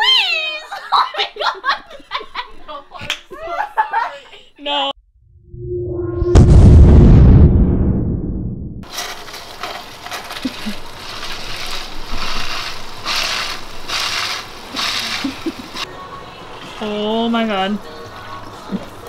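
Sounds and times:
loud deep sound effect: 5.0s - 8.9s
water dispenser filling plastic cup: 10.4s - 15.8s.

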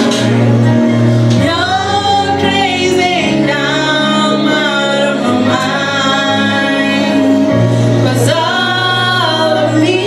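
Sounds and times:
backing track low notes: 0.0s - 10.0s
woman singing gospel: 1.4s - 10.0s.

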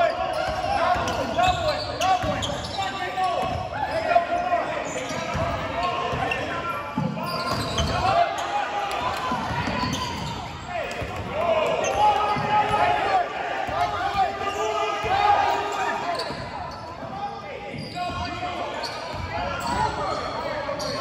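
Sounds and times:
sneakers squeaking: 0.0s - 21.0s.

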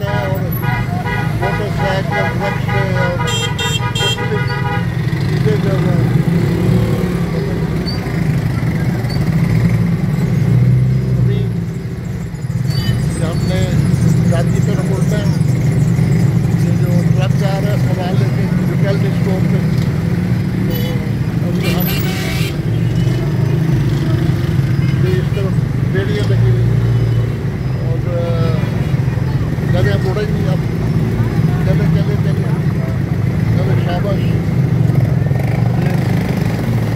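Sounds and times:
street traffic: 0.0s - 36.9s.

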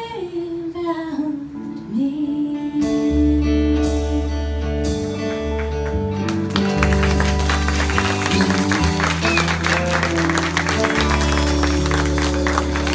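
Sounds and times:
live band with guitars: 1.4s - 12.9s
audience applause: 5.6s - 12.9s.

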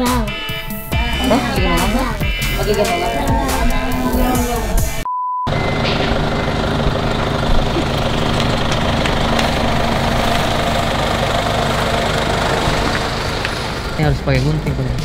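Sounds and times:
vehicle engine idling: 0.0s - 15.0s
test tone beep: 5.0s - 6.6s.

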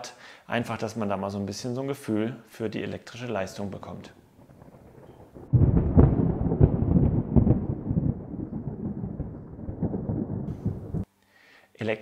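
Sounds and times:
loud deep rumble: 4.4s - 11.0s.

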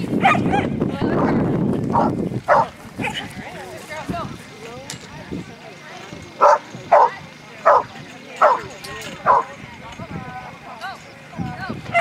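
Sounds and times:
dog barking: 0.2s - 0.7s, 1.9s - 3.2s, 6.4s - 9.5s.

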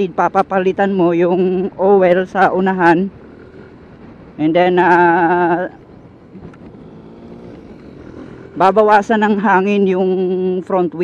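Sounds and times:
road noise: 0.0s - 11.0s
scooter engine hum: 0.0s - 11.0s
wind: 0.0s - 11.0s.

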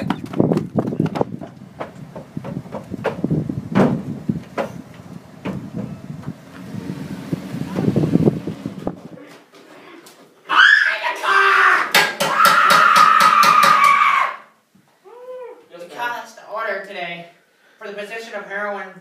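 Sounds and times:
knocks: 0.0s - 6.4s.

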